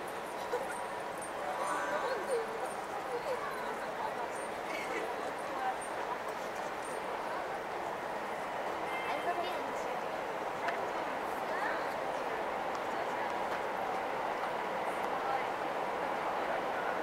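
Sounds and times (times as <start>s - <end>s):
crowd hubbub: 0.0s - 17.0s.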